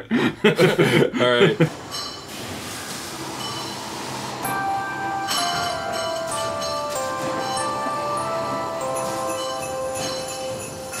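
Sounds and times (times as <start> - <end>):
christmas music with held notes: 3.2 - 11.0
small bells jingling: 4.4 - 11.0.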